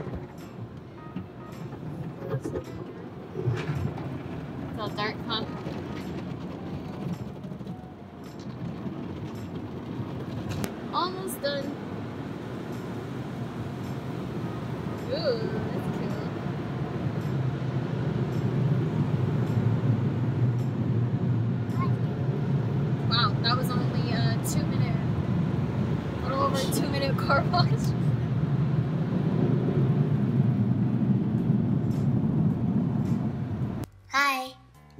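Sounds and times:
water spraying on car: 0.0 - 33.8.

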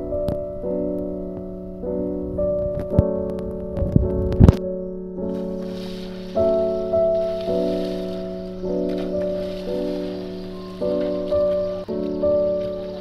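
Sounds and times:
held music chords: 0.0 - 13.0.

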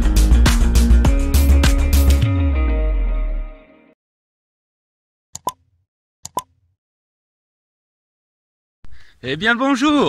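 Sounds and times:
mouse double click with pop: 5.4 - 5.6, 6.2 - 6.6.

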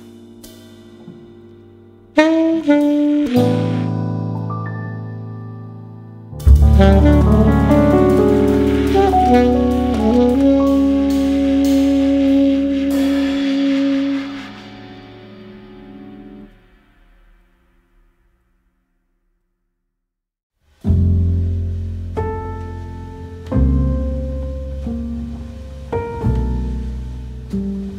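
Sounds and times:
instrumental jazz with saxophone: 2.1 - 4.9, 6.5 - 15.6.

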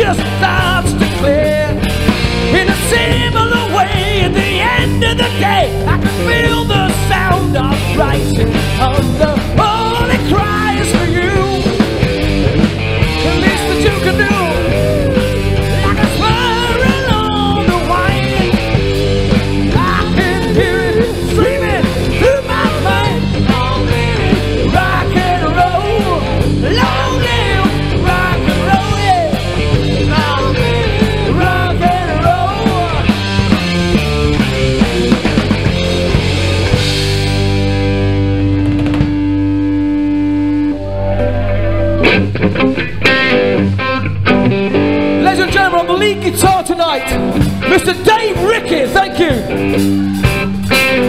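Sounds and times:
rock band playing: 0.0 - 51.0
lead electric guitar bending notes: 36.6 - 45.9.

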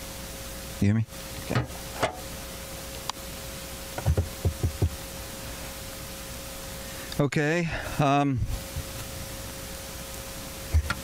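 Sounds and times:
steady hiss: 0.0 - 11.0
microphone thumps: 1.5 - 2.3, 4.0 - 5.0.

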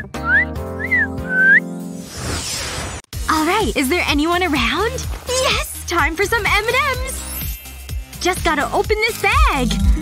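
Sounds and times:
person whistling gliding notes: 0.0 - 1.8
light background music: 3.2 - 10.0.

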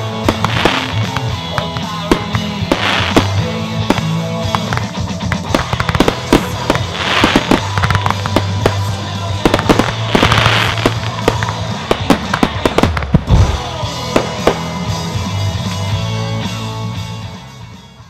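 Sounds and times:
fireworks bangs: 0.0 - 15.2
fireworks hissing: 0.0 - 15.2
loud music: 0.0 - 18.0
deep firework boom: 1.8 - 14.7.

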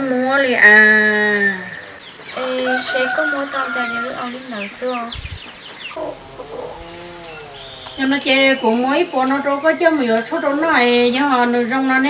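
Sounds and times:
bird calling: 0.2 - 11.4.

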